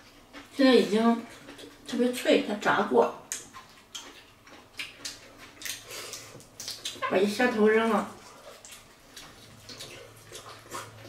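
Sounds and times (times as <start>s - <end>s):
crunching fried shrimp: 3.2s - 7.0s, 8.0s - 11.0s.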